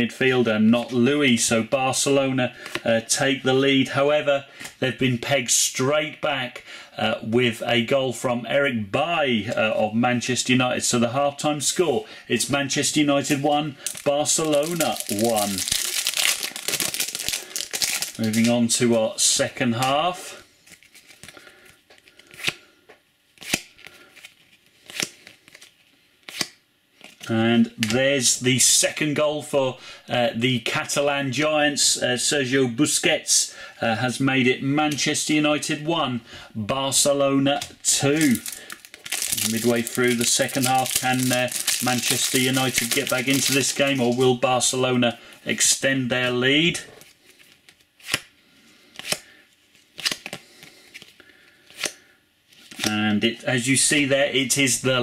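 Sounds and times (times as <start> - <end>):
card edges rustling: 13.2 - 18.9, 20.5 - 22.6, 37.5 - 44.4
trading cards snapping: 23.4 - 23.8, 50.0 - 50.4.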